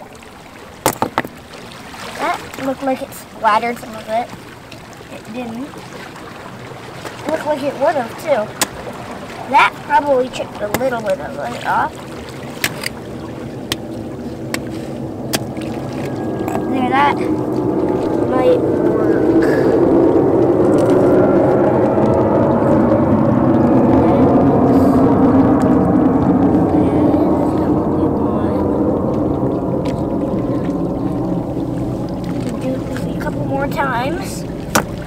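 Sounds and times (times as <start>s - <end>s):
water lapping at rocks: 0.0s - 35.0s
rock knocking on boulder: 0.8s - 1.3s.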